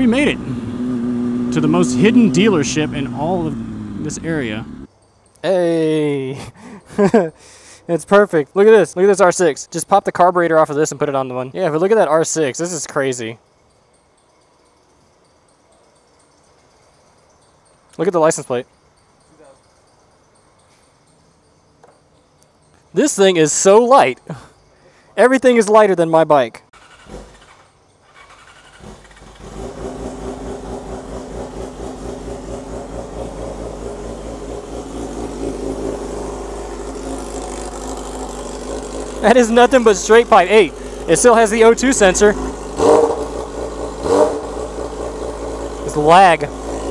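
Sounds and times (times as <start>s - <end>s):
motorcycle engine starting and idling: 0.0s - 4.9s, 26.7s - 46.9s.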